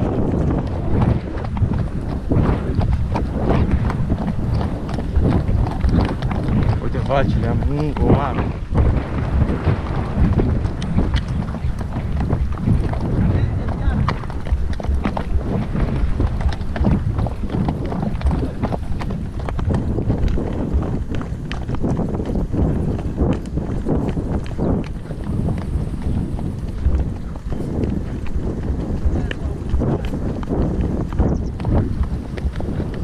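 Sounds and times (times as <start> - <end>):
horse hoofbeats on dirt: 0.0 - 33.0
wind rumble on microphone: 0.0 - 33.0.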